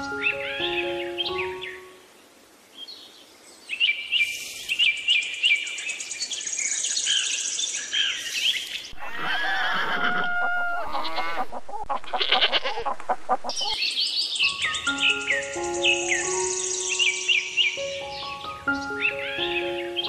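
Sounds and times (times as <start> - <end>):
bird chirping and trilling: 3.6 - 20.0
wavering bird calls: 7.0 - 20.0.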